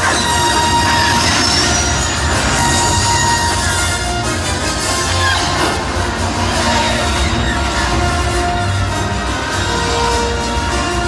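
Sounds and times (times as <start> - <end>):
dense rushing noise: 0.0 - 11.0.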